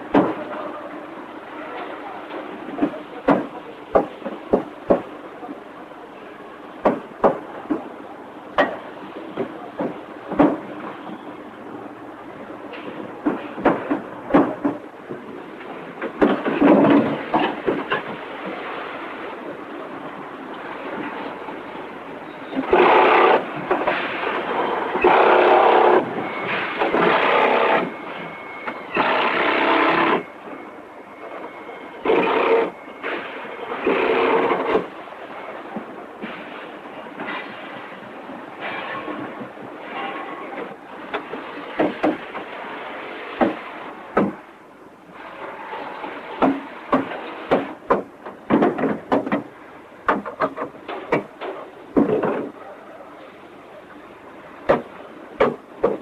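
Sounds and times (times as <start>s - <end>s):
loud bursts of machine noise: 22.6s - 30.3s, 32.0s - 34.8s.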